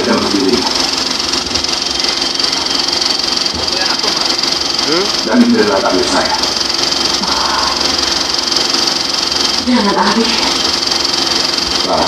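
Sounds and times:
film projector clattering: 0.0s - 12.0s.

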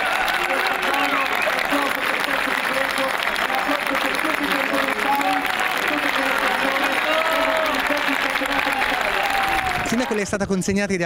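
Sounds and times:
crowd applauding: 0.0s - 10.4s.

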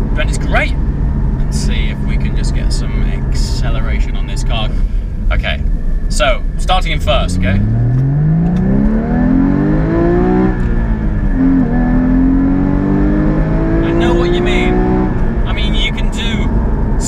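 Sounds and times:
sports car engine accelerating: 0.0s - 17.0s.

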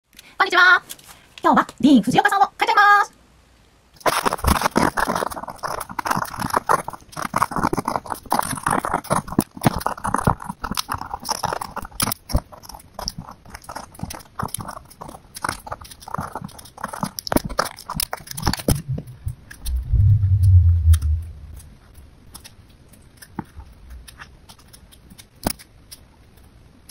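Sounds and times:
pencil scratching on paper: 4.5s - 18.7s
low rumble: 18.6s - 21.9s.

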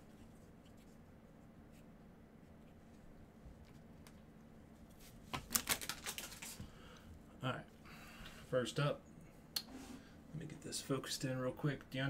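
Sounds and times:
trading cards shuffled: 4.9s - 6.6s.

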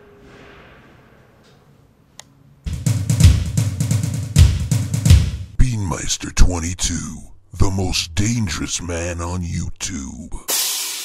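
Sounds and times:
music with drum-kit beat: 2.7s - 5.6s, 10.5s - 11.0s.

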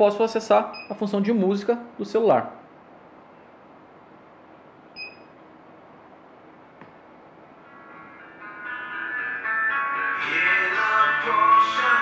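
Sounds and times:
music through car stereo: 8.1s - 12.0s.

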